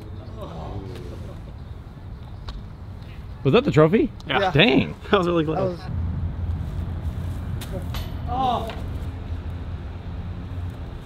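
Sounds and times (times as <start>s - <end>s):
steady low rumble: 5.0s - 11.0s.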